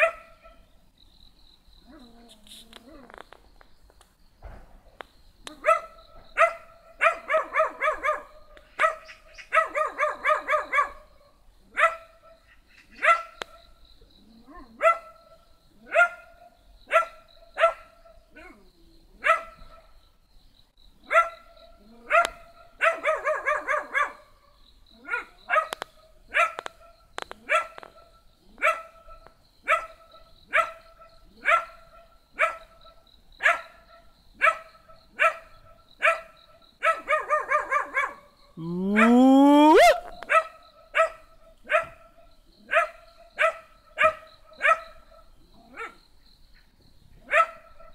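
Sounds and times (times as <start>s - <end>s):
small dog barking: 0.0s - 0.6s, 5.5s - 11.0s, 11.7s - 12.1s, 13.0s - 13.5s, 14.5s - 18.6s, 19.2s - 19.8s, 21.1s - 24.3s, 25.0s - 26.7s, 27.4s - 32.8s, 33.4s - 46.0s, 47.2s - 47.9s
long call rising in pitch: 38.6s - 40.1s.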